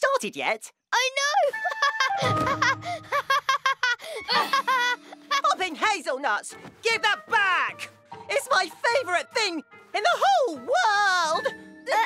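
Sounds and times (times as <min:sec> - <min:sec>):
cartoon character giggling: 0:01.5 - 0:05.5.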